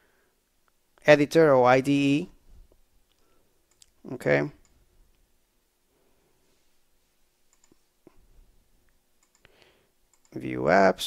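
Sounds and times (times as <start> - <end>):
computer mouse clicks: 3.1 - 4.0, 7.5 - 7.8, 9.2 - 10.4.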